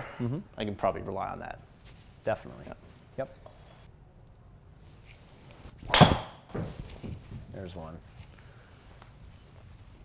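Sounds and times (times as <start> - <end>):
golf driver striking ball: 5.9 - 6.5.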